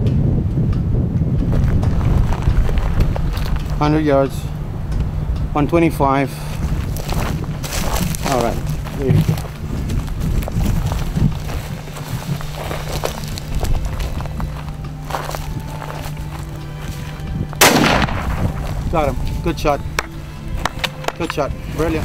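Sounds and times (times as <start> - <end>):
steady low hum: 0.0 - 22.0
rifle shot with ringing tail: 17.6 - 18.7.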